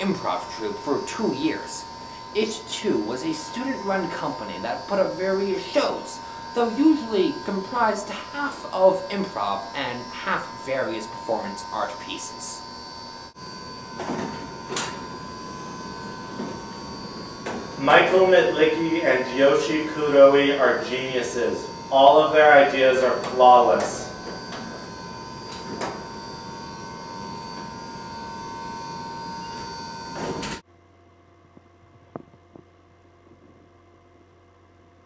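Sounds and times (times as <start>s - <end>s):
elevator door mechanical whir: 0.0s - 30.6s
thin high whining tones: 0.0s - 30.6s.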